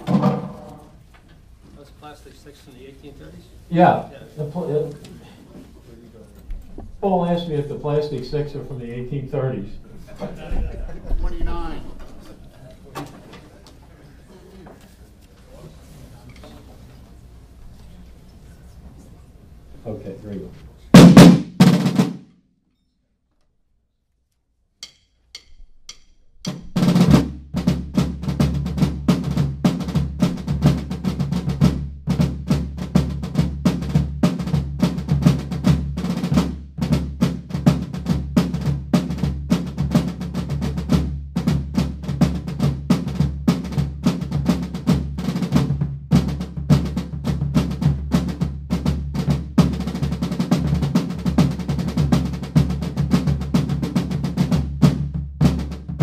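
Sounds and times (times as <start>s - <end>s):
rope-tension drums playing rolls: 0.0s - 1.1s, 6.5s - 12.5s, 20.9s - 22.3s, 26.4s - 56.0s.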